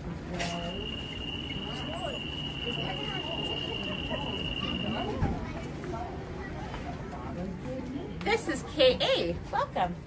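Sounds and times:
faint voices: 0.0 - 10.0
steady high-pitched tone: 0.6 - 5.3.

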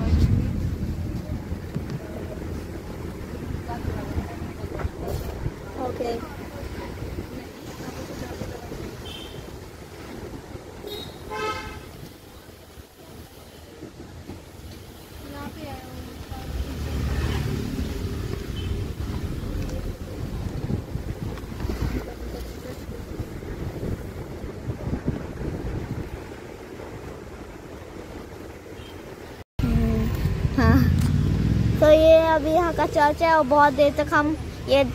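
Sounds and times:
car road and engine rumble: 0.0 - 34.9
vehicle horn toot: 9.0 - 9.4, 10.8 - 12.0.

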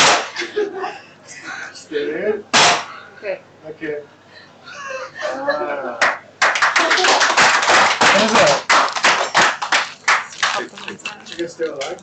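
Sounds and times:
people clapping: 6.0 - 12.0.

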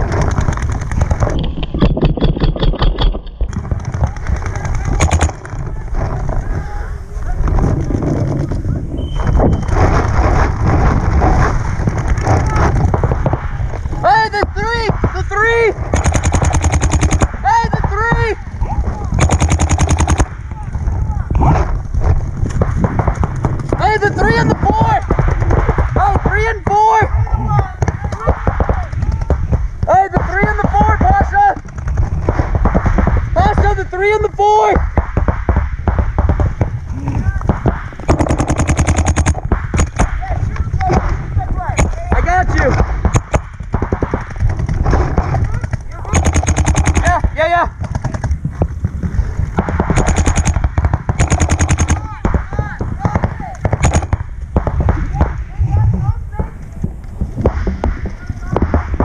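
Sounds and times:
paintball markers firing: 0.0 - 5.7, 15.8 - 18.3, 19.1 - 20.4, 37.4 - 40.2, 40.8 - 55.4.

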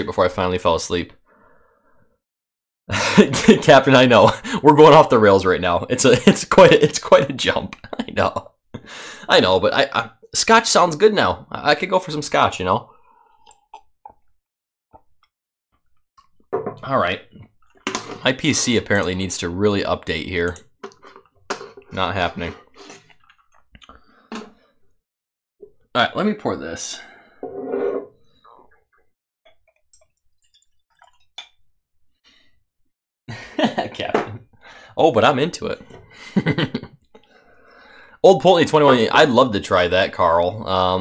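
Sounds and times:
man speaking: 21.9 - 22.6, 33.7 - 34.4, 35.0 - 35.9, 38.2 - 41.0.

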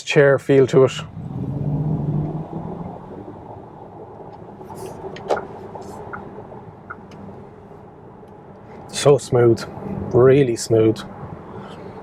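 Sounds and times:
road and tyre rumble: 0.0 - 12.0.

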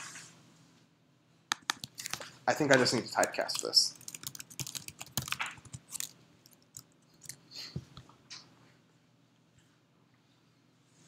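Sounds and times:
computer keyboard typing: 1.5 - 7.4.

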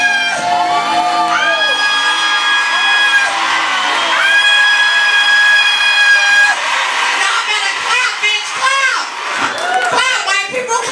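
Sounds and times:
whoops and cheers: 0.0 - 10.2
noisy room: 0.0 - 10.9.

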